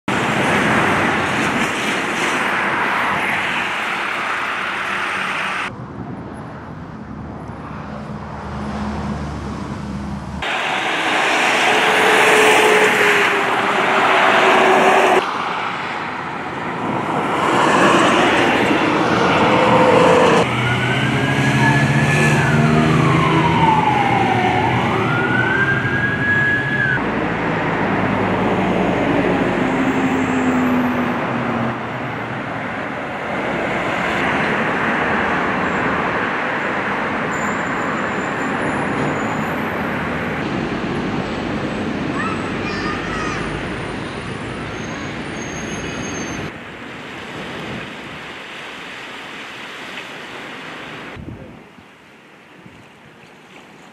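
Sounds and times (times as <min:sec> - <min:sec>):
street traffic noise: 0:00.0 - 0:53.9
siren wailing: 0:10.4 - 0:15.2, 0:18.9 - 0:27.0.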